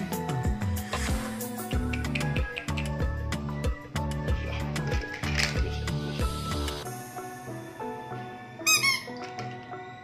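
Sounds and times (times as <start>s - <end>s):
background music melody: 0.0s - 10.0s
squeaky rubber toy squeaking: 8.6s - 9.2s.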